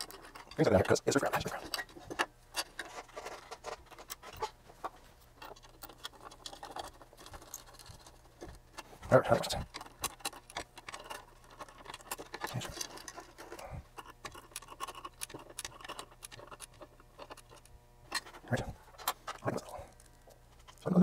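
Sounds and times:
metal parts and tool clicking: 0:00.0 - 0:04.6, 0:05.3 - 0:20.9.

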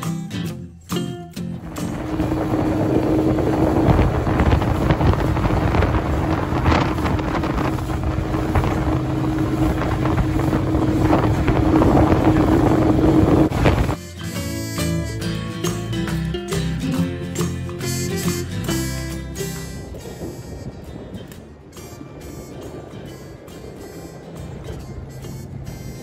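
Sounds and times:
motorboat engine humming: 0:00.6 - 0:26.0
wind noise on microphone: 0:01.4 - 0:26.0.

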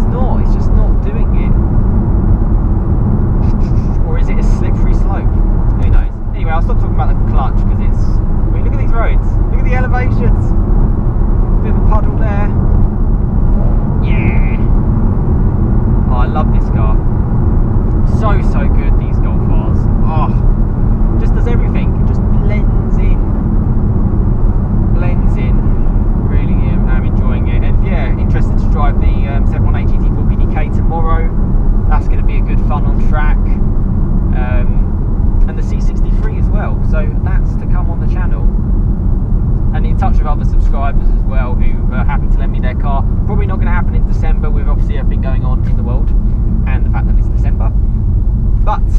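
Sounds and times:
car cabin engine and road rumble: 0:00.0 - 0:48.9.

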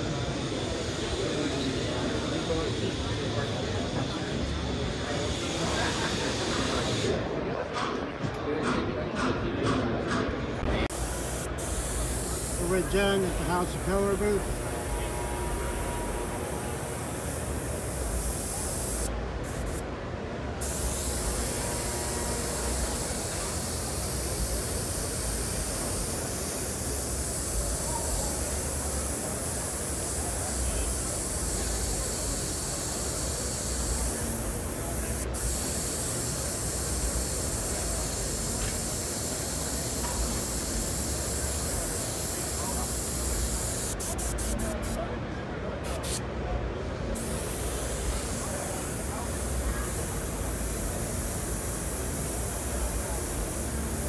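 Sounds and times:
airbrush hissing: 0:10.9 - 0:19.8, 0:20.6 - 0:45.0, 0:45.9 - 0:46.2, 0:47.2 - 0:54.0.

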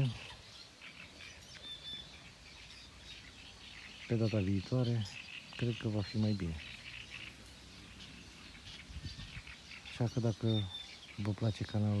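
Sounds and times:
bird chirps and calls: 0:00.0 - 0:12.0.

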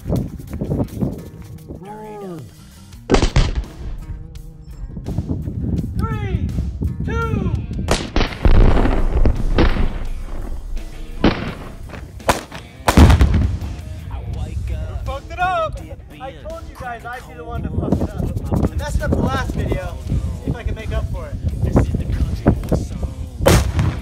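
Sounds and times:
gunfire: 0:03.1 - 0:04.2, 0:07.9 - 0:13.8, 0:23.5 - 0:24.0
loud explosion blasts with rumble: 0:07.9 - 0:11.9, 0:13.0 - 0:13.8, 0:23.4 - 0:24.0.

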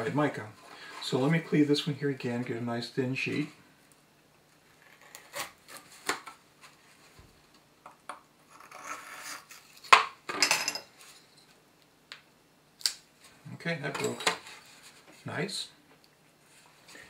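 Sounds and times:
steel tool scraping crystal: 0:08.5 - 0:09.7.

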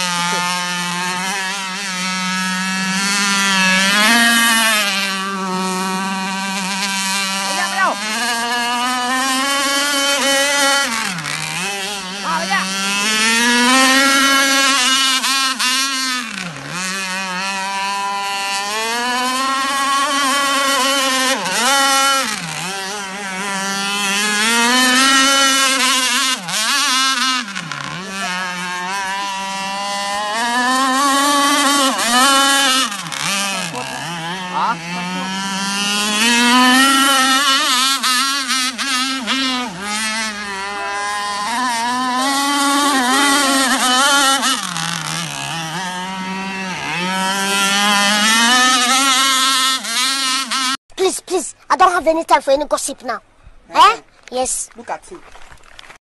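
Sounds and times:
two-stroke boat engine revving: 0:00.0 - 0:52.2.

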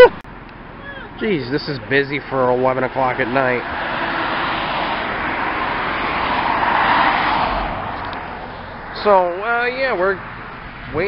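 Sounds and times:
car driving past: 0:02.4 - 0:09.2.

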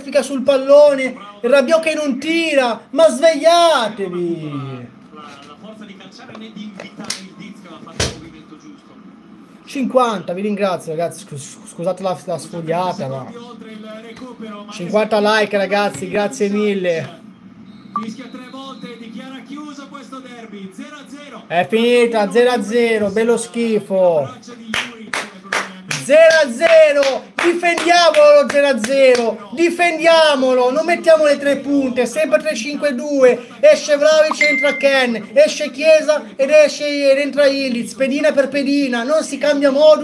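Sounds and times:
hard thump on a desk: 0:08.0 - 0:08.3
man clapping hands: 0:24.7 - 0:29.3.

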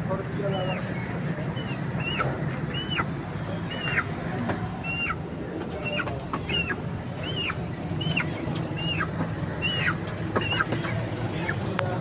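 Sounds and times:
bird calling: 0:00.5 - 0:11.7.

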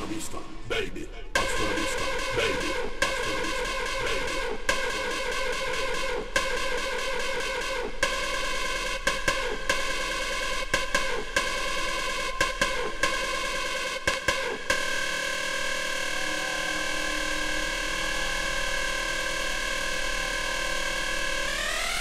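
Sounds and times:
electronic dance music: 0:00.0 - 0:22.0.

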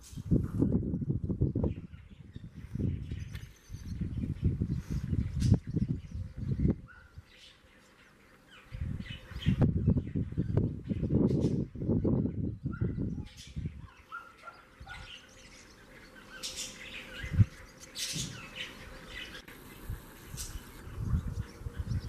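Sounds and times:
swallows twittering: 0:00.2 - 0:22.0.

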